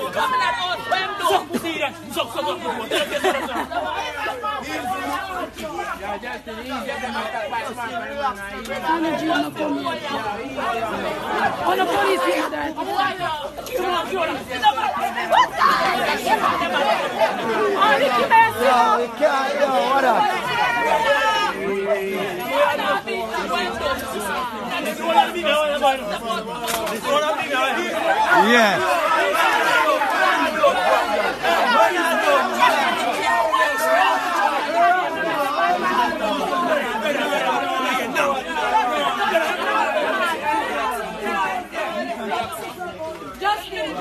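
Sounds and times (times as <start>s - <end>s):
overlapping loud chatter: 0.0s - 44.0s
people arguing: 0.0s - 44.0s.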